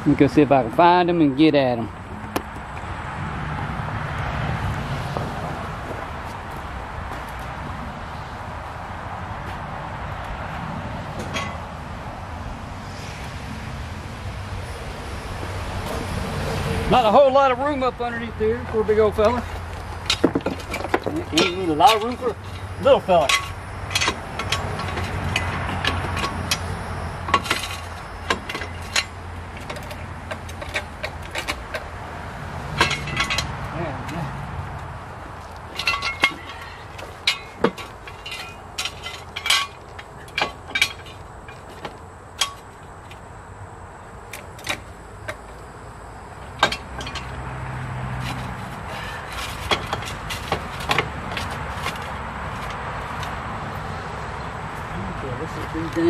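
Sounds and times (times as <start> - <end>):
metal clinks of jack stands: 11.2 - 11.6, 19.2 - 31.9, 32.7 - 34.2, 35.6 - 43.2, 46.4 - 47.4, 48.2 - 53.3.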